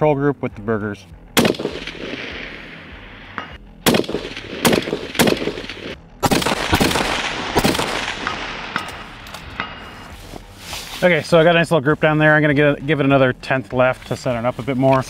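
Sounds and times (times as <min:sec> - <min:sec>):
rifle shots echoing: 0:01.4 - 0:10.1.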